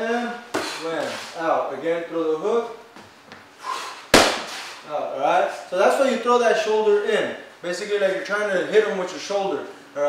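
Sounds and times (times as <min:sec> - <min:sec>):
boxing glove smacking a mitt: 0:04.1 - 0:04.7.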